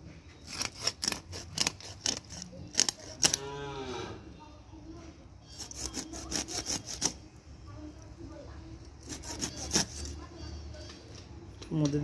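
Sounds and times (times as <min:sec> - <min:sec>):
fish scraped against a blade: 0:00.4 - 0:03.4, 0:05.4 - 0:07.2, 0:09.0 - 0:10.2.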